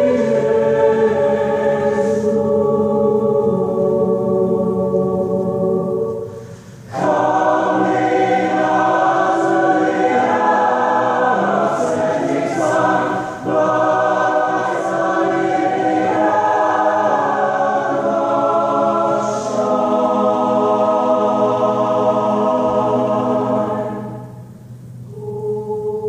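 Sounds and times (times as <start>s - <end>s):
choir singing a chorale: 0.0s - 26.0s.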